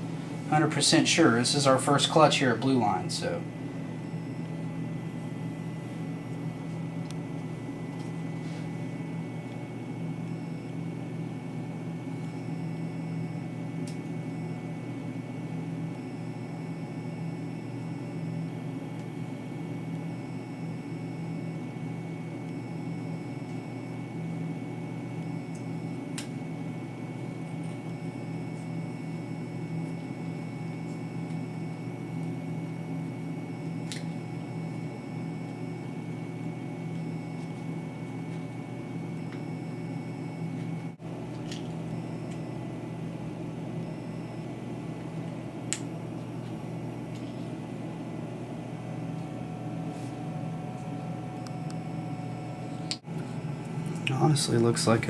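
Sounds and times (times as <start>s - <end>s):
low machine hum with whine: 0.0s - 55.0s.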